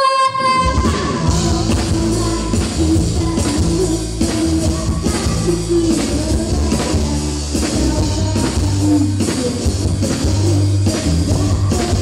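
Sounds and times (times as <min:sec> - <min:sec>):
distorted electric guitar: 0:00.0 - 0:12.0
woman singing: 0:00.0 - 0:12.0
bass guitar: 0:00.6 - 0:12.0
drum kit: 0:00.6 - 0:12.0.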